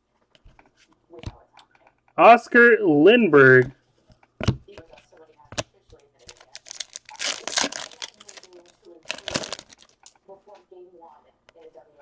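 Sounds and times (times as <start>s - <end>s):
crinkling: 6.2s - 10.3s.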